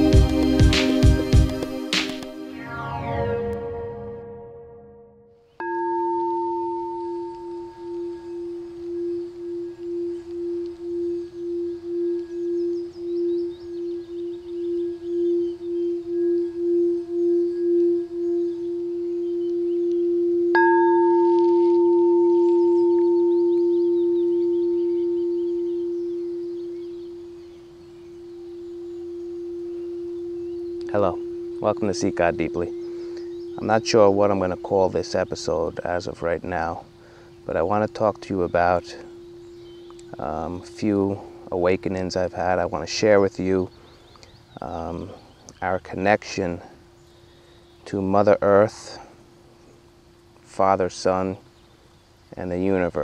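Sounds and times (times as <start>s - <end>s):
crystal singing bowl ringing: 2.6s - 51.8s.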